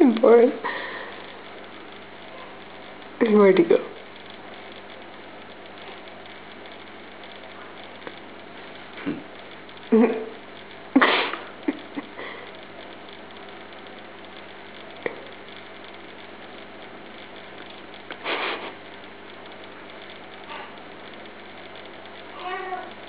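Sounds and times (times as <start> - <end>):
steady low hum: 0.0 - 23.0
person laughing: 9.9 - 10.3, 10.9 - 12.5, 18.2 - 18.8.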